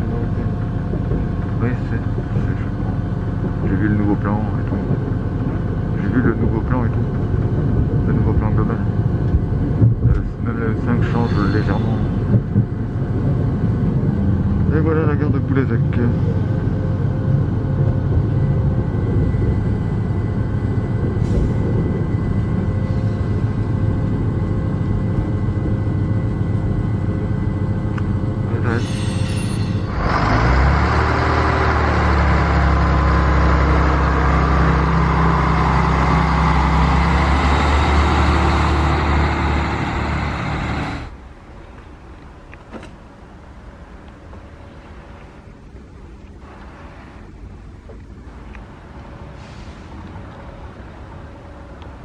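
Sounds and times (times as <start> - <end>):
railcar diesel engine running: 0.0 - 52.0
train doors opening clatter: 21.0 - 23.9, 40.5 - 43.3.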